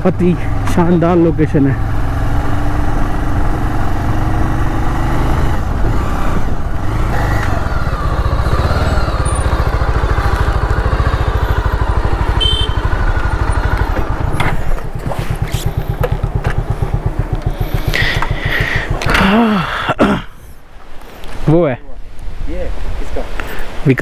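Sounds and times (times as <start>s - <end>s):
motorcycle engine running: 0.0s - 19.9s.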